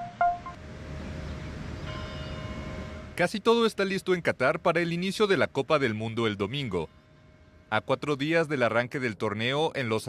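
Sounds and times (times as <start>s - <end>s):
faint higher tones: 0.0s - 0.6s
faint steady tone: 0.0s - 3.2s, 4.9s - 8.8s.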